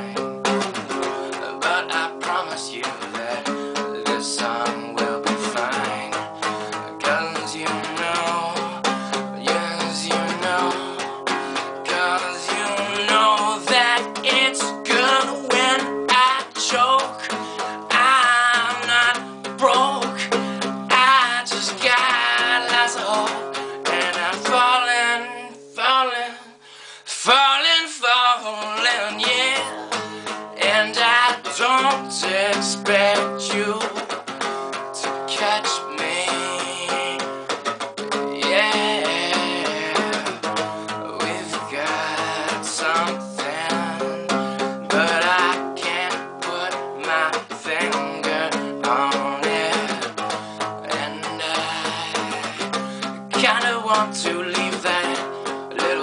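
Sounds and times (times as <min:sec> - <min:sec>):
man singing with vibrato: 0:00.0 - 0:56.0
strummed classical guitar: 0:00.0 - 0:56.0.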